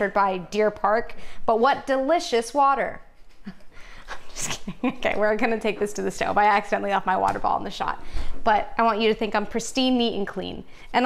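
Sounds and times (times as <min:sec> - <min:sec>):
woman speaking: 0:00.0 - 0:03.1, 0:04.1 - 0:11.0
woman breathing: 0:01.1 - 0:01.5, 0:03.6 - 0:04.4, 0:08.0 - 0:08.5.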